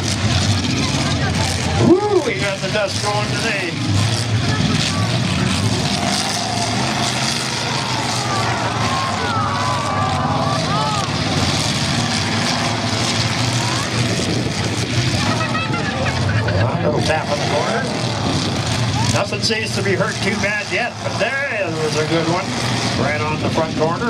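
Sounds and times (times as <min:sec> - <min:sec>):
crowd noise: 0:00.0 - 0:24.0
truck engines revving: 0:00.0 - 0:24.0
nearby voices: 0:00.6 - 0:24.0.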